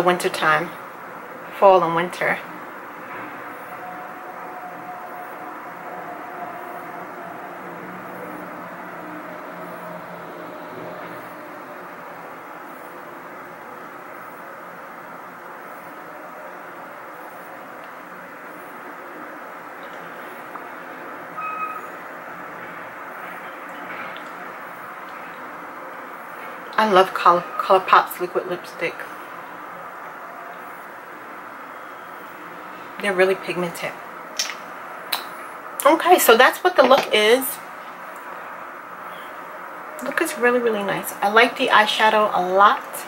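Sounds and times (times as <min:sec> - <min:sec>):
mechanical background hum: 0:00.0 - 0:43.0.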